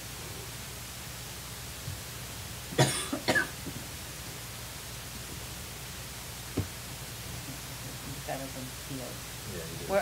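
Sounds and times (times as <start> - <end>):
low room hum: 0.0 - 10.0
person coughing: 2.8 - 3.6.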